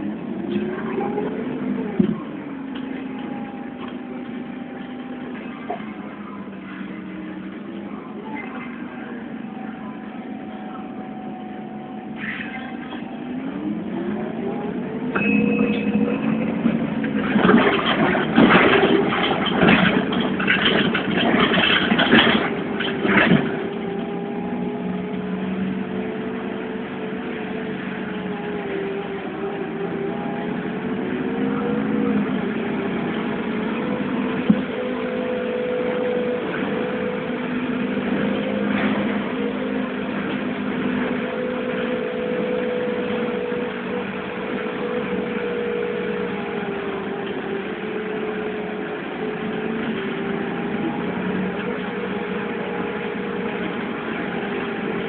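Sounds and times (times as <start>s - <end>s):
bus engine from inside: 0.0s - 55.0s.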